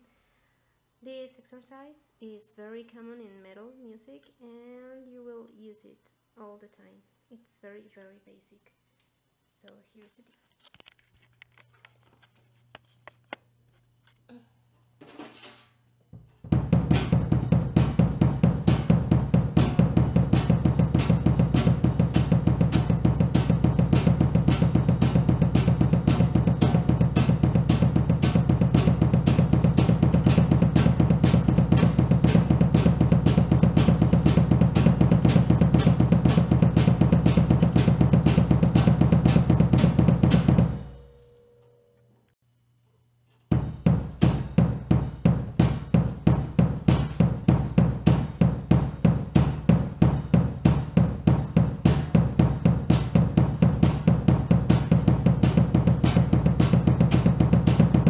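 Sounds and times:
sticks playing drum kit: 15.0s - 41.2s, 43.3s - 58.0s
double pedal bass drum: 16.2s - 41.0s, 43.5s - 58.0s.

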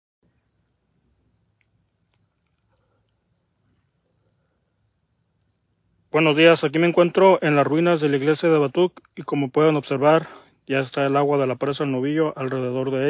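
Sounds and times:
high-pitched insect chirring: 0.3s - 13.0s.

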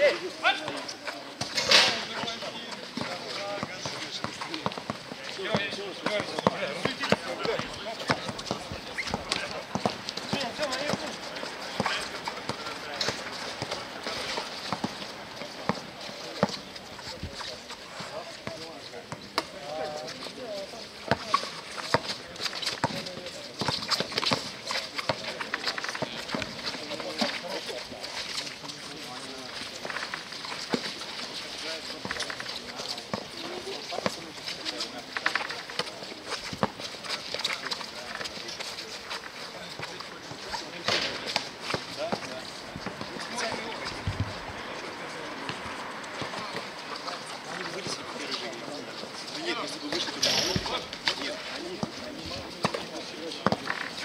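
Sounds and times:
people talking and calling out: 0.0s - 54.0s
shoes on court: 0.0s - 54.0s
basketball bouncing on court: 3.0s - 11.0s.

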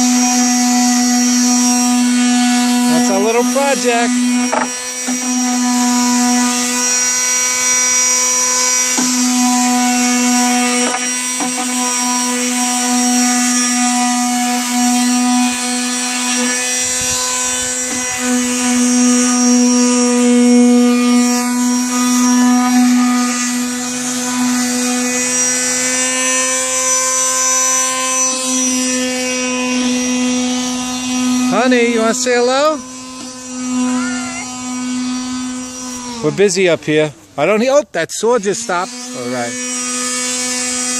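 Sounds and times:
electric sander running: 0.0s - 37.1s, 38.2s - 40.9s.

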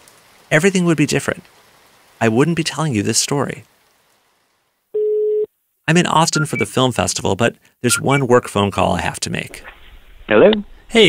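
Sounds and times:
telephone beep: 5.0s - 5.5s, 6.4s - 6.7s.

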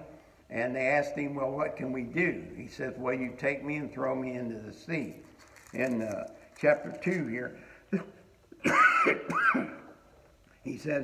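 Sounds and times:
man coughing: 7.9s - 10.0s.

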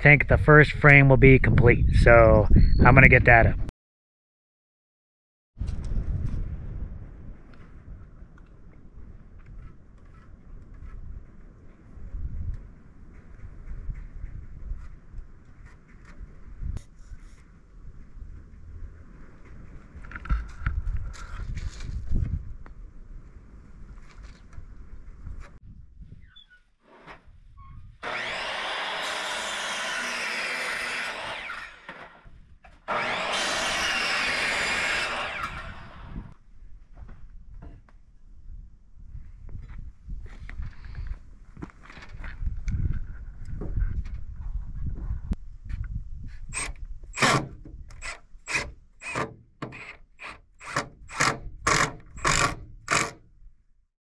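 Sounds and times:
cordless drill driving screws: 28.0s - 32.2s, 32.9s - 36.1s, 46.6s - 53.2s.

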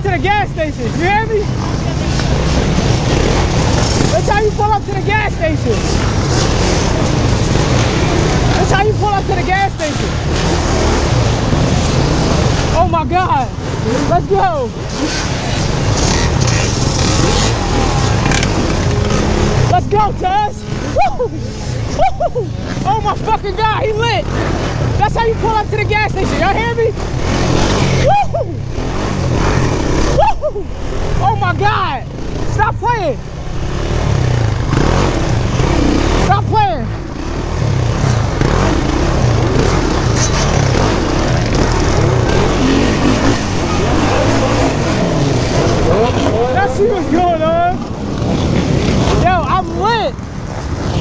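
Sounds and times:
quad engine running: 0.0s - 51.0s
person shouting: 17.4s - 18.6s, 20.4s - 24.0s, 28.0s - 28.6s, 30.1s - 32.0s.

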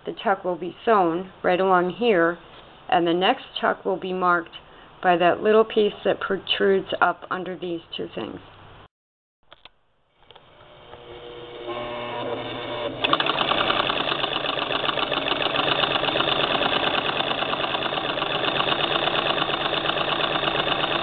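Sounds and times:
sewing machine clattering: 13.0s - 21.0s.

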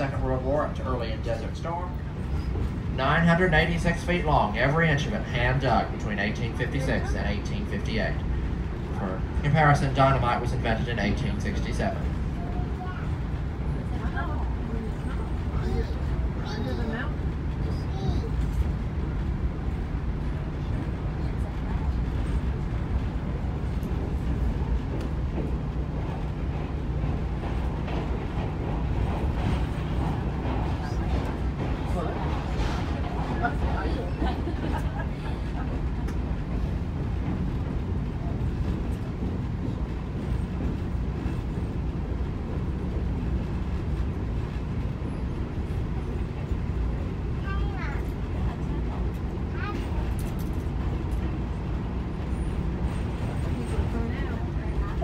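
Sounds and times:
train coach rumbling in tunnel: 0.0s - 55.0s.

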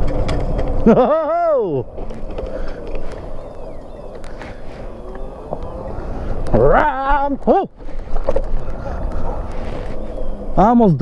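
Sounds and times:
tyre noise on pavement: 0.0s - 10.8s
faint steady whine: 0.0s - 11.0s
wind rumble on microphone: 0.0s - 11.0s.

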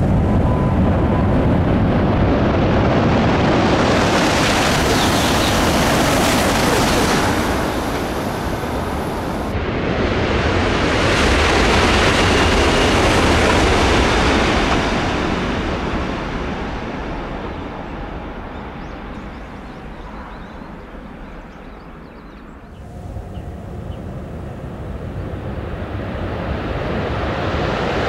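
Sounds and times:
high-speed train rushing past: 0.0s - 20.4s, 22.7s - 28.0s.

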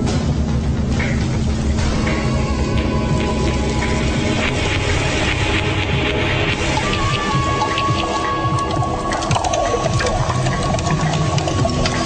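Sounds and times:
rain falling: 2.7s - 12.0s.

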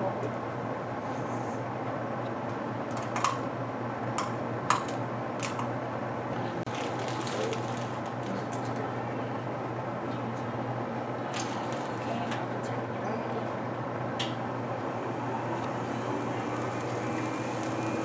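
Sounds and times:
steady low hum: 7.6s - 18.0s.

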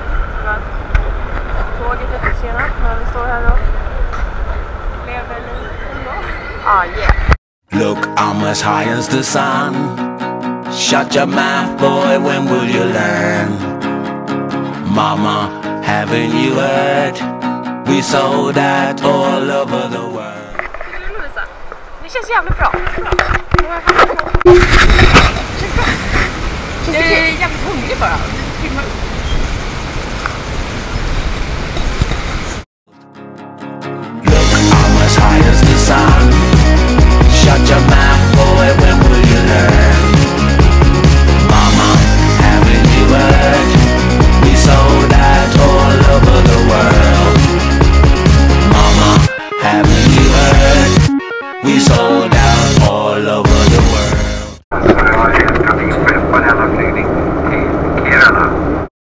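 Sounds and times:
microphone handling rumble: 0.0s - 7.4s, 20.4s - 27.3s, 53.5s - 58.8s
person talking: 1.8s - 4.0s, 25.1s - 28.9s
background music: 7.7s - 20.5s, 32.9s - 54.6s
airliner cabin drone: 54.8s - 58.8s.

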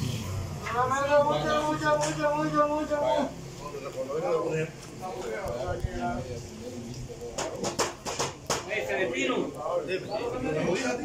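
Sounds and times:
people talking and calling out: 0.0s - 11.0s
sharp knocks: 7.4s - 8.7s.

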